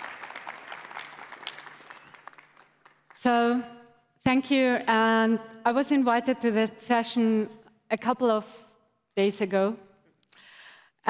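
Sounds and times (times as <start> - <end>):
audience applauding: 0.0 - 3.2.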